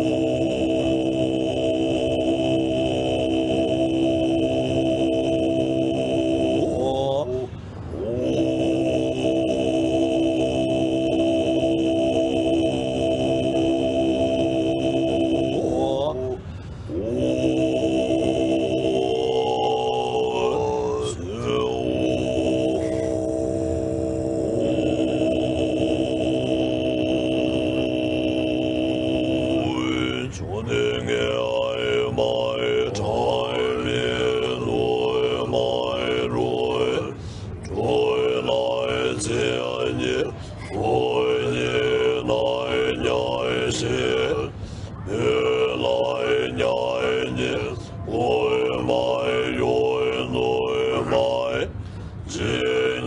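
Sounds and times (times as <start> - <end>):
deep throat-singing voice: 0.0 - 53.0.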